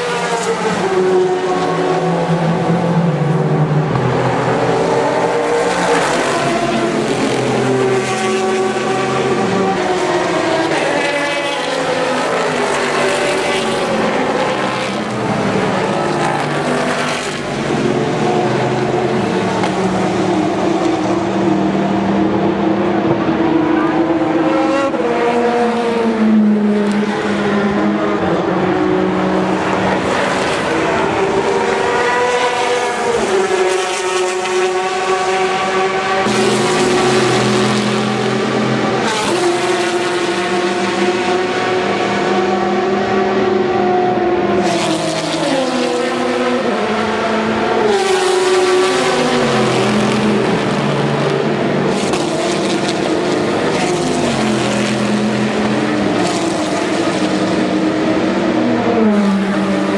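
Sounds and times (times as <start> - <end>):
race car engines passing: 0.0 - 59.9.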